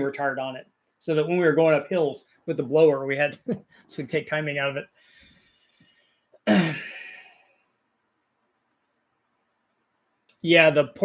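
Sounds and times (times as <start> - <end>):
man coughing: 6.4 - 7.4.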